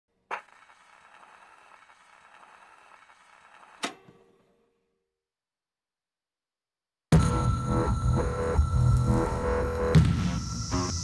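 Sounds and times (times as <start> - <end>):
sharp hit sound effect: 7.1 - 11.0.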